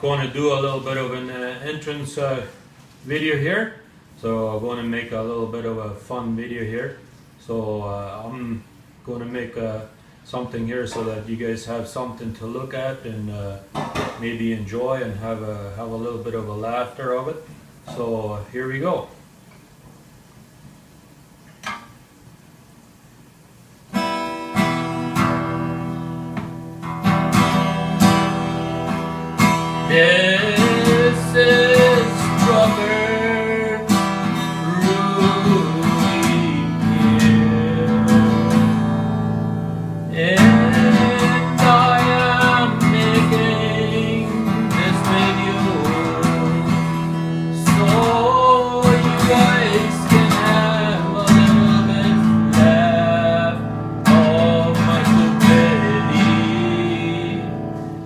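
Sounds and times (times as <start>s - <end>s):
acoustic guitar strumming: 23.9s - 58.0s
man singing: 29.8s - 39.4s, 40.0s - 57.8s.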